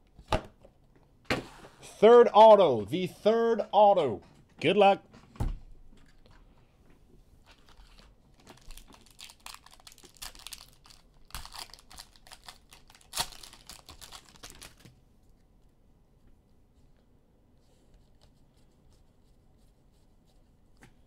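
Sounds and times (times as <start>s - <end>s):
foil wrapper crinkling and tearing: 7.5s - 14.9s.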